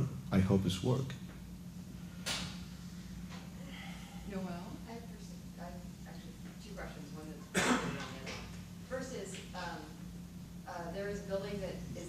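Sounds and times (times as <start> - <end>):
person coughing: 7.5 - 8.2.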